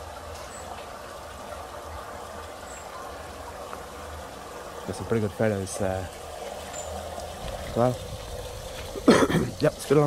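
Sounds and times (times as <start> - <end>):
trickling pool water: 0.0 - 10.0.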